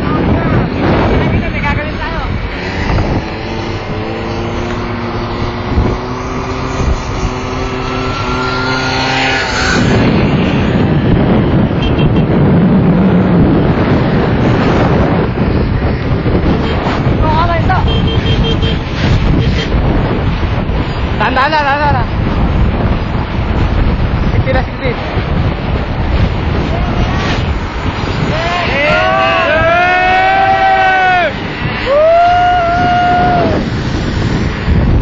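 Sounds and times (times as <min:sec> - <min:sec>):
wind rushing over microphone: 0:00.0 - 0:35.0.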